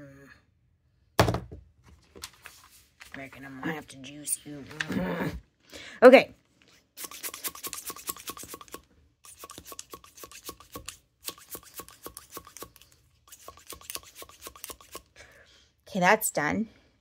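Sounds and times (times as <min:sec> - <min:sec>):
brush bristles flicking ink: 0:07.0 - 0:15.1.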